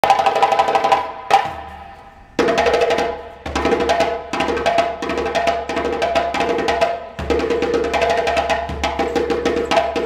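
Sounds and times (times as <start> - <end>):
hand drum roll: 0.0 - 10.0.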